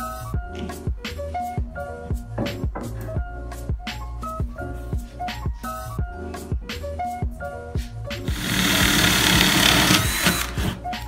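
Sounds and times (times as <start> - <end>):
background music with steady beat: 0.0 - 11.0
electric drill boring into wood: 8.3 - 10.8.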